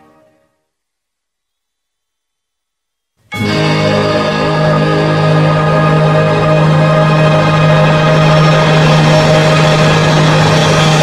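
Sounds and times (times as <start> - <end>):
instrumental backing track chord: 3.0 - 11.0.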